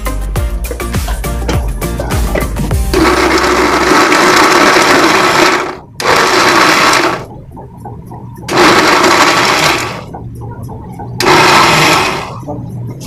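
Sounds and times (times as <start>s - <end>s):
background music: 0.0s - 13.0s
electric mixer grinder running: 2.9s - 7.3s, 8.5s - 10.1s, 11.2s - 12.4s.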